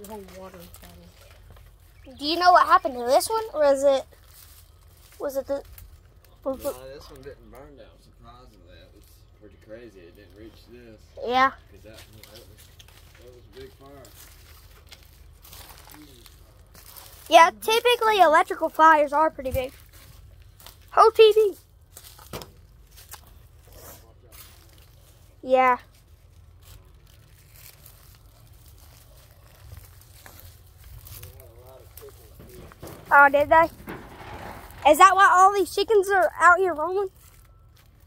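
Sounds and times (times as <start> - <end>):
faint voices murmuring: 26.5 - 35.5
low rumble: 32.0 - 35.3.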